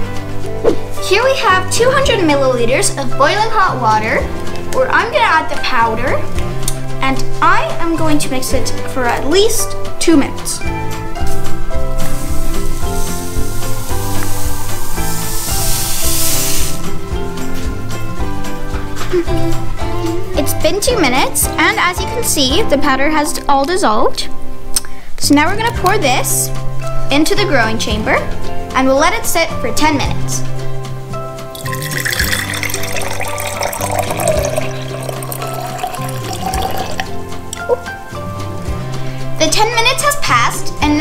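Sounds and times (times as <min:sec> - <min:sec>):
background music: 0:00.0 - 0:41.0
powder pouring into water: 0:12.2 - 0:16.8, 0:31.5 - 0:37.2.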